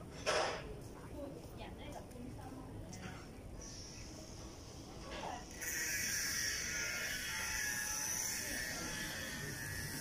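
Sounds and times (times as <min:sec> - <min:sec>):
steady high-pitched buzz: 0:03.6 - 0:10.0.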